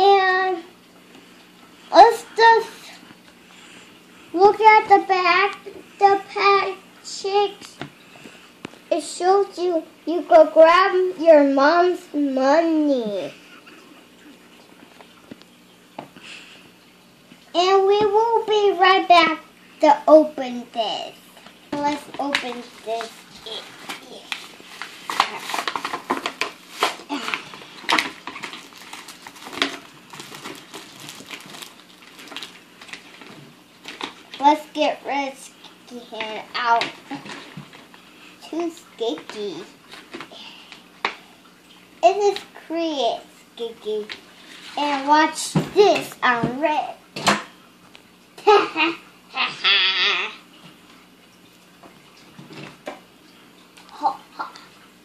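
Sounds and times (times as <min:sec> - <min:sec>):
plastic packaging crinkling and tearing: 0:22.3 - 0:34.4.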